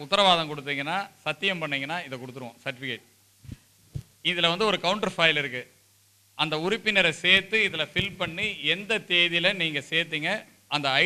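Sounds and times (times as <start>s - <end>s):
low electrical hum: 0.0s - 11.0s
man talking through microphone: 4.3s - 5.7s, 6.4s - 11.0s
microphone being knocked: 8.0s - 8.6s.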